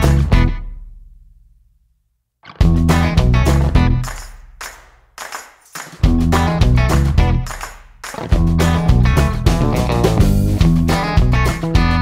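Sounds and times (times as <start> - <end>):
guitar band music: 0.0 - 0.7, 2.4 - 12.0
sharp percussive hits: 2.6 - 10.6.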